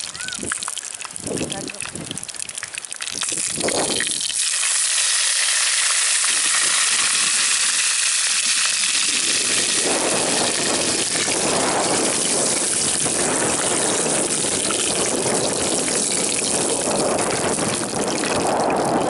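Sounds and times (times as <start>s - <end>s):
greens sizzling in hot oil: 0.0s - 18.3s.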